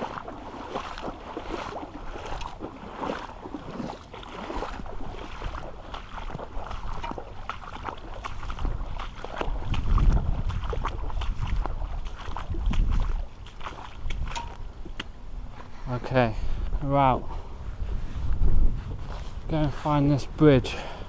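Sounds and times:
boots splashing through water: 0:00.0 - 0:15.8.

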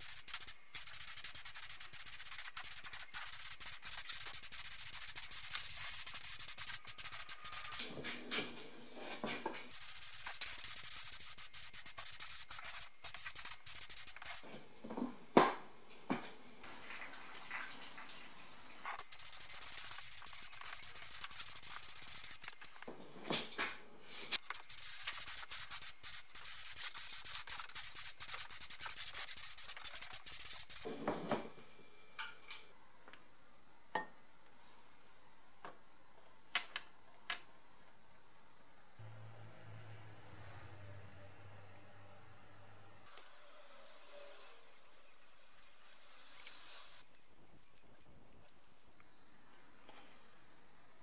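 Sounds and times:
spray gun hissing: 0:00.0 - 0:07.8, 0:09.7 - 0:14.4, 0:19.0 - 0:22.8, 0:24.3 - 0:30.9.

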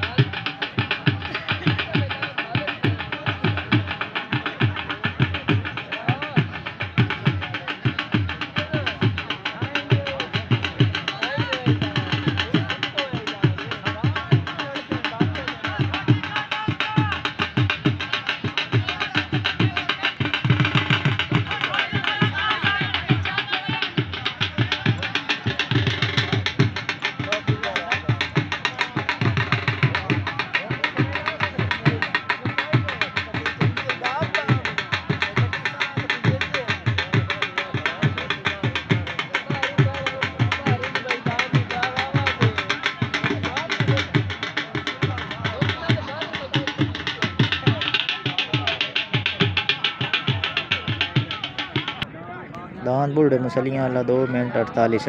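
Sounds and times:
music with drum beat: 0:00.0 - 0:52.1
voices: 0:00.0 - 0:55.0.

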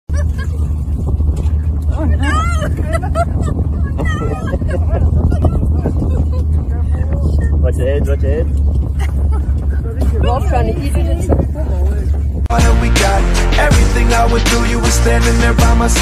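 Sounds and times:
vehicle engine rumbling: 0:00.1 - 0:16.0
people exclaiming: 0:01.9 - 0:07.4.

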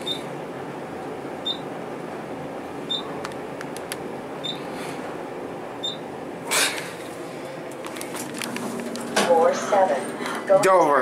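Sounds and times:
elevator ride noise: 0:00.0 - 0:11.0
short high elevator beeps: 0:01.4 - 0:01.6, 0:02.9 - 0:03.1, 0:05.8 - 0:06.0.

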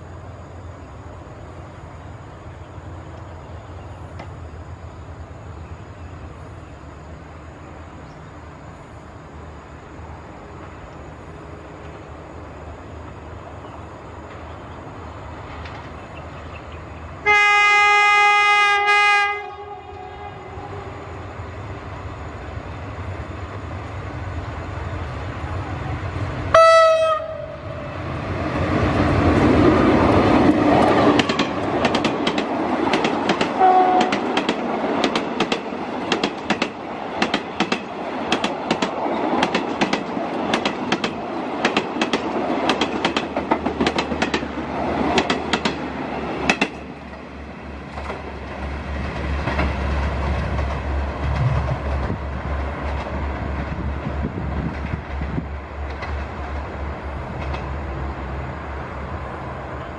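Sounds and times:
locomotive rumbling past: 0:00.0 - 0:59.9
train wheels clickety-clack: 0:15.4 - 0:16.6, 0:28.3 - 0:57.7
train horn: 0:17.2 - 0:21.2, 0:26.5 - 0:28.0, 0:33.6 - 0:34.3.

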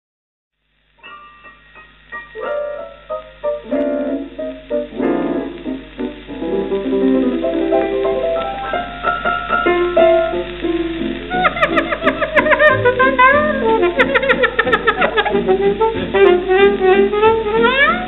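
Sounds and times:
piano chords and runs: 0:00.8 - 0:18.0
saxophone bending notes: 0:09.6 - 0:18.0.

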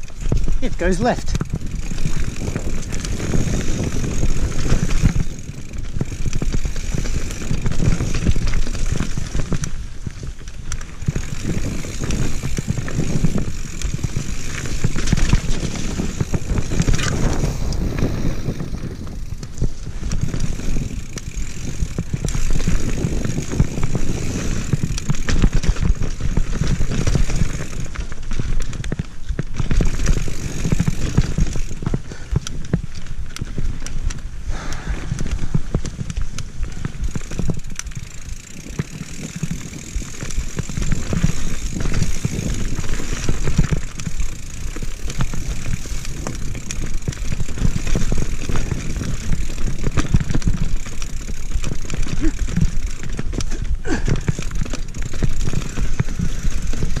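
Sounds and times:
bike rattling over bumps: 0:00.0 - 0:57.0
bike tyres rumbling on dirt: 0:00.0 - 0:57.0.

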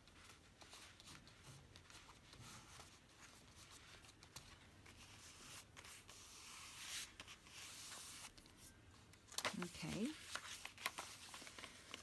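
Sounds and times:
hand rubbing paper: 0:00.0 - 0:08.7.

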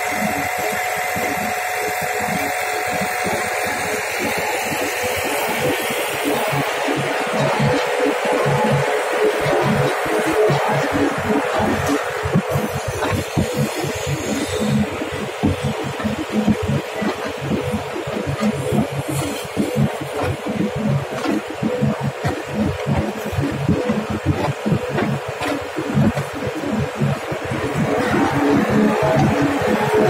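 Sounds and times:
clay mixing machine auger churning: 0:00.0 - 0:30.0
low throb from drive: 0:00.0 - 0:30.0
steady machine hum: 0:00.0 - 0:30.0.

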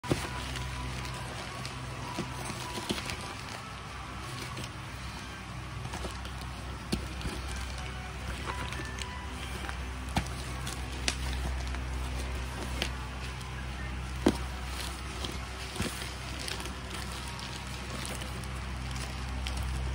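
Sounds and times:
background music with low notes: 0:00.0 - 0:19.9
plastic bag crinkling: 0:00.0 - 0:19.9.

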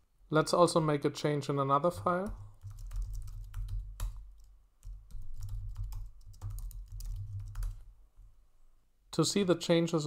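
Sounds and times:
typing on computer keyboard: 0:02.2 - 0:07.8.

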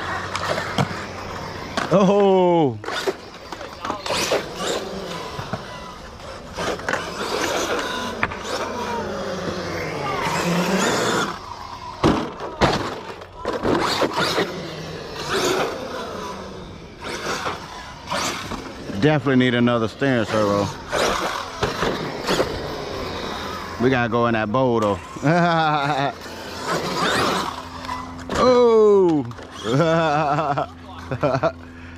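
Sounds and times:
electric motor whining: 0:00.0 - 0:31.7
rc truck knocking and clattering: 0:02.8 - 0:16.4, 0:20.7 - 0:23.7.

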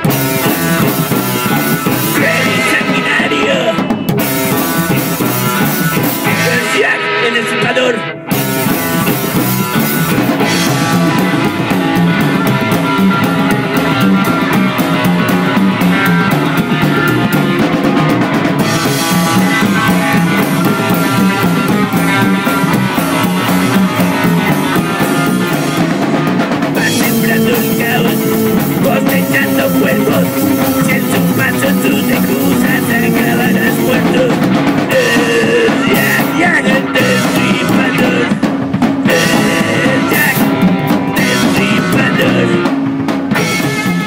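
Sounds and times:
fast busy drumming: 0:00.0 - 0:07.4, 0:08.3 - 0:44.0
psychobilly band playing: 0:00.0 - 0:44.0.

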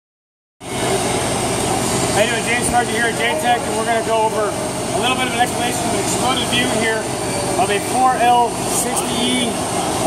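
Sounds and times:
low machine hum: 0:00.6 - 0:10.0.

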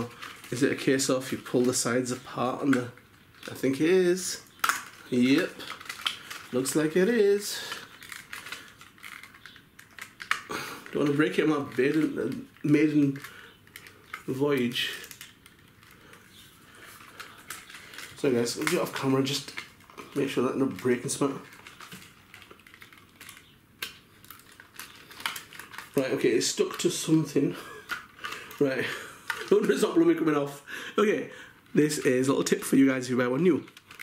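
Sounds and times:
plastic clicks and rattles: 0:00.0 - 0:03.8, 0:04.4 - 0:30.0, 0:31.6 - 0:34.0.

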